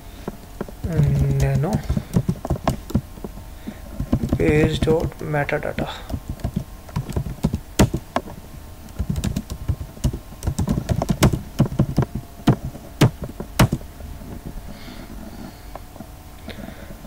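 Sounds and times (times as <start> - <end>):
typing on computer keyboard: 0.9 - 3.0, 6.1 - 8.0, 8.9 - 13.8.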